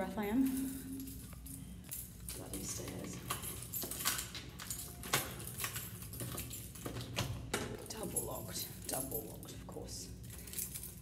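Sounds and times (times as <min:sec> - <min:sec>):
keys jangling: 0:00.1 - 0:11.0.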